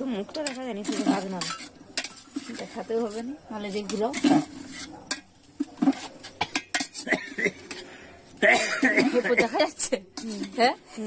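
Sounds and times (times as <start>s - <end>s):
metal ladle scraping a pot: 0.0s - 11.0s.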